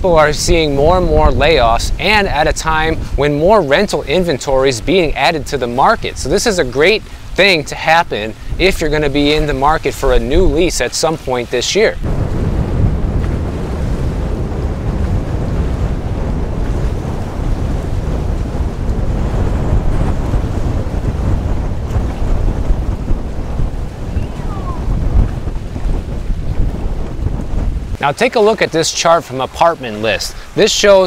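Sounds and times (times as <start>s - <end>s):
choppy water: 0.0s - 31.0s
wind buffeting microphone: 0.0s - 31.0s.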